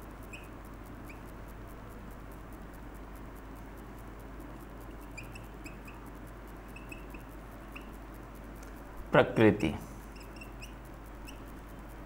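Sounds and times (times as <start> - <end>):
steady background hiss: 0.0 - 12.0
marker squeaking on whiteboard: 0.2 - 1.3, 5.0 - 6.1, 6.7 - 8.0, 10.1 - 11.6.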